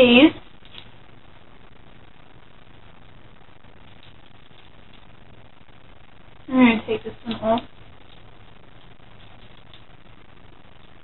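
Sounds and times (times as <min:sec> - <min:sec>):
room tone hiss and hum: 0:00.0 - 0:11.0.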